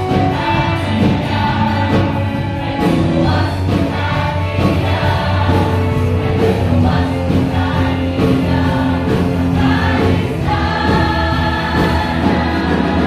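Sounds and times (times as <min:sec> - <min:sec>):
church choir singing: 0:00.0 - 0:13.0.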